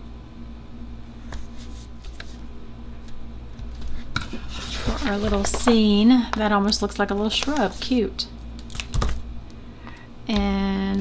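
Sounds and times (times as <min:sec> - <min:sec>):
steady low hum: 0:00.0 - 0:11.0
paper rustling: 0:03.7 - 0:08.0.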